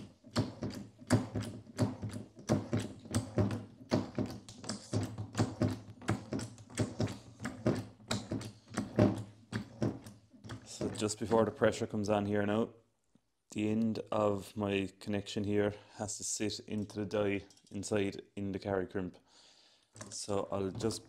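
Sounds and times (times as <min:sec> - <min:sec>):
hand pump lever clicking: 0:00.0 - 0:11.5.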